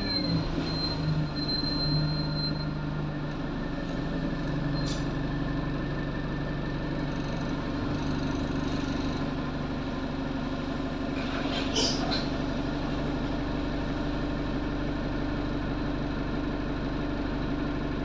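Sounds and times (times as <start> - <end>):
bus diesel engine idling: 0.0 - 18.0.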